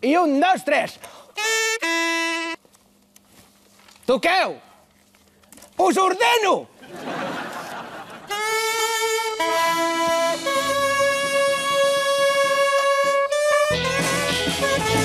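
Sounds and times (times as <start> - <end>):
horns playing long notes: 1.4 - 2.6, 8.3 - 15.0
band with drums and bass: 13.5 - 15.0.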